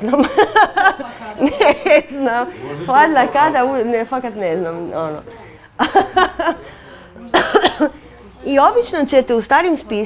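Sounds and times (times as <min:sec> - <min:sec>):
person coughing: 0:07.3 - 0:08.0.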